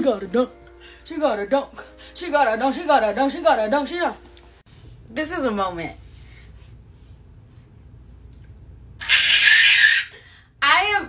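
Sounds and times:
woman shrieking with delight: 9.0 - 10.2.

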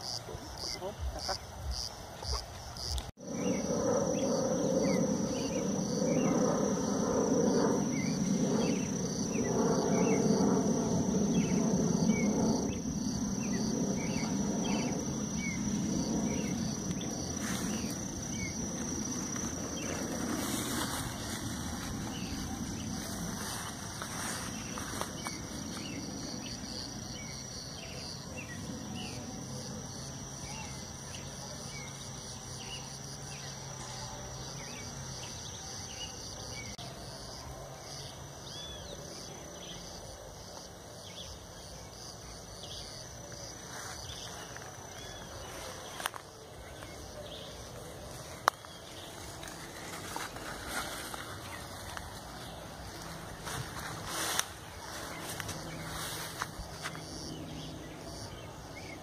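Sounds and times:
insects trilling and chirping: 0.0 - 59.0.

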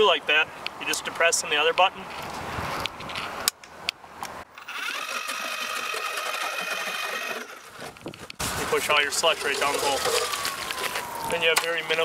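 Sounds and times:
ice auger motor whining: 4.6 - 7.7, 9.4 - 11.4.

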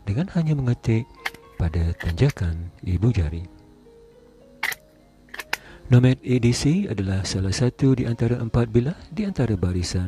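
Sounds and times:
faint background music: 0.0 - 10.0
knife sheath clicking: 4.6 - 5.6.

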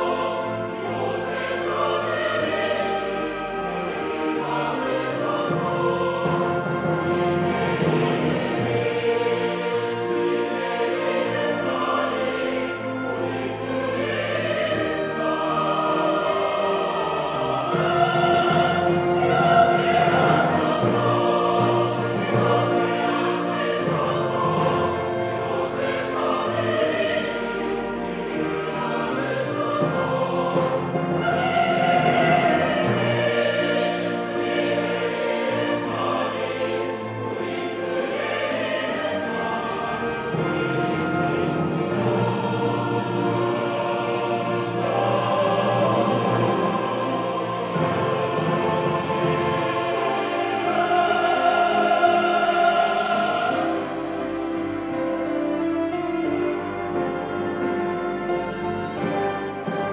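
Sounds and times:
mixed choir singing: 0.0 - 59.9
piano: 0.0 - 59.9
strings: 0.0 - 59.9
timpani: 0.0 - 59.9.

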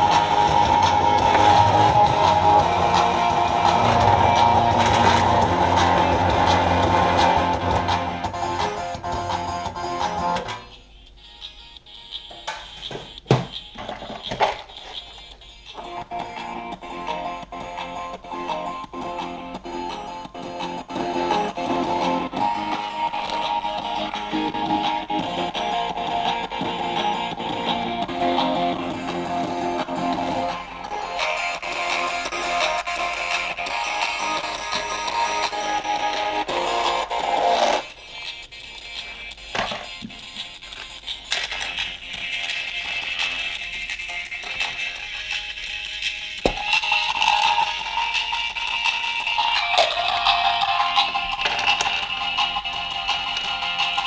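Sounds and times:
guitar music through small speaker: 0.0 - 54.0.

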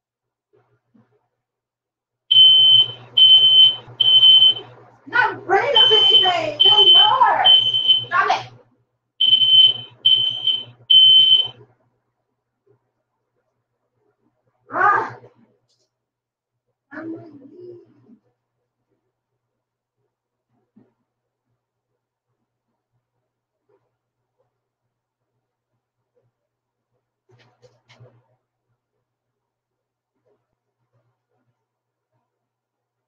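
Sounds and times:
smoke alarm beeping: 2.3 - 4.7, 5.7 - 8.2, 9.2 - 11.6.

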